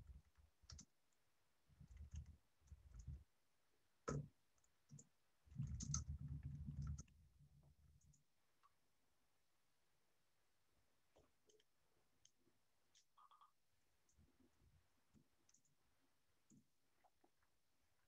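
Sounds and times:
faint clicks: 0.1s - 1.2s.

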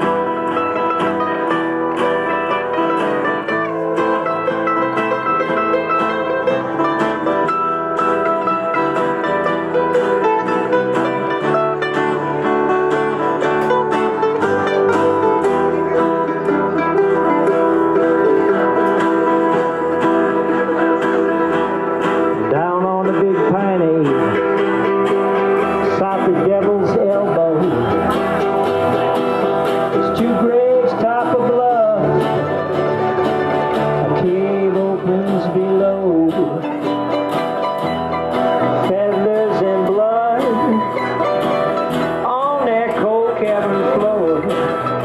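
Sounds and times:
acoustic guitar: 0.0s - 45.0s
bass: 0.0s - 45.0s
mandolin picking: 0.0s - 45.0s.

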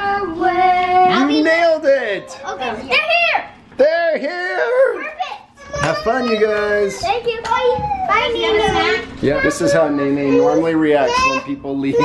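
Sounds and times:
young children calling and chattering: 0.0s - 12.0s.

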